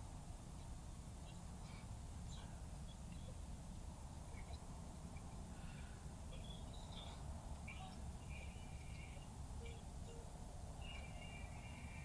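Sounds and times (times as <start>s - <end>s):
low outdoor rumble: 0.0s - 12.0s
faint high bird chirps: 0.6s - 3.4s, 4.3s - 12.0s.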